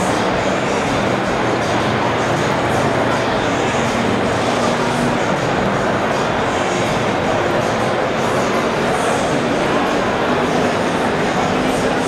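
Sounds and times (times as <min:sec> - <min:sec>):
indoor exhibition hall rumble: 0:00.0 - 0:12.0.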